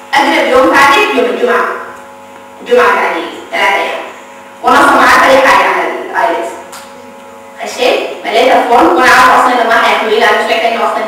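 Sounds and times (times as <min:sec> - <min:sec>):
mains hum: 0:00.0 - 0:11.0.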